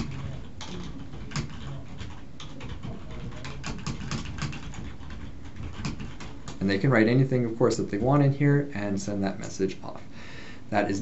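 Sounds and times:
computer keyboard typing: 0:00.0 - 0:06.8.

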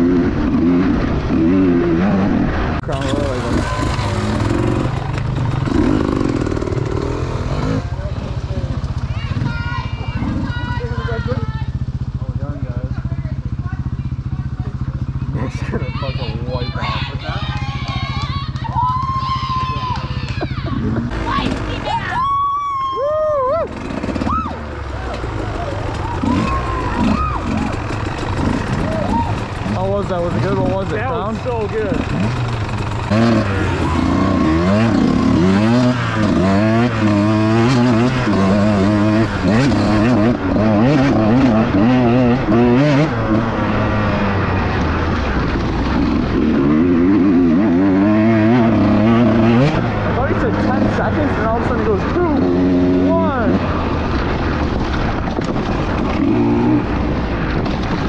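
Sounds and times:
dirt bike engine revving: 0:00.0 - 0:58.0
dirt bike engines idling: 0:00.0 - 0:58.0.

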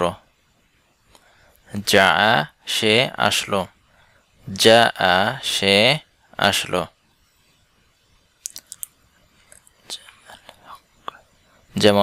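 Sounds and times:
mouth clicks: 0:08.4 - 0:09.7
person whispering: 0:09.5 - 0:11.3.

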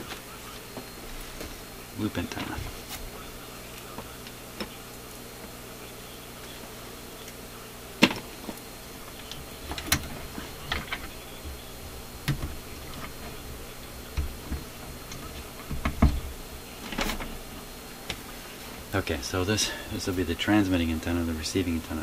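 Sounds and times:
low electrical hum: 0:00.0 - 0:22.0
cable connectors clicking and knocking: 0:12.2 - 0:13.3, 0:14.1 - 0:17.3.

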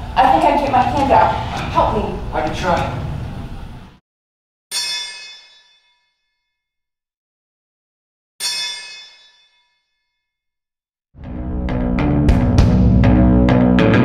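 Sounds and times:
metallic ringing hits: 0:04.7 - 0:05.9.

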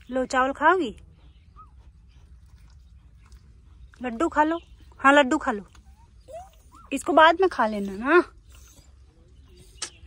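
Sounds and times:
puppy squeaking: 0:05.7 - 0:08.8.

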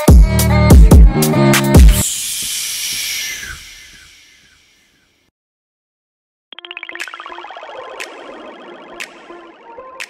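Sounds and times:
hissing noise: 0:02.0 - 0:04.6
faint downward swoops: 0:02.0 - 0:04.9.

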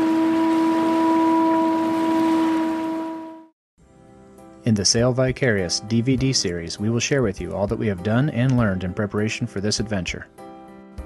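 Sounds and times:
ship's horn long note: 0:00.0 - 0:03.5.

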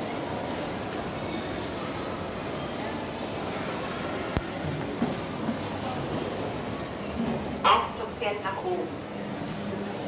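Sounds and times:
crowd hubbub: 0:00.0 - 0:10.0.

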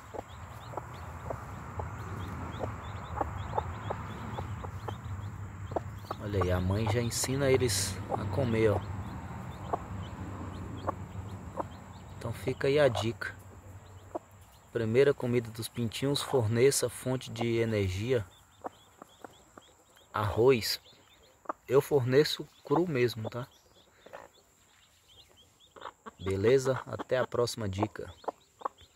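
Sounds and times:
hen clucking: 0:00.0 - 0:14.6, 0:15.2 - 0:28.9
chicks peeping: 0:00.0 - 0:28.9.

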